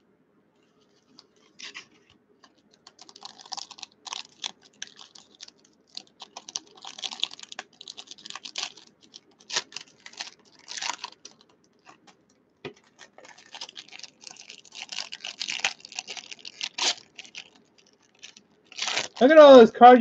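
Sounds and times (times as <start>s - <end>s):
foil wrappers crinkling: 0.8s - 19.6s.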